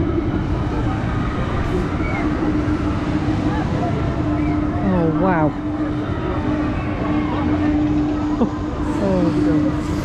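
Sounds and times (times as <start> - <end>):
low rushing noise: 0.0 - 10.0
ride machinery hum: 0.0 - 10.0.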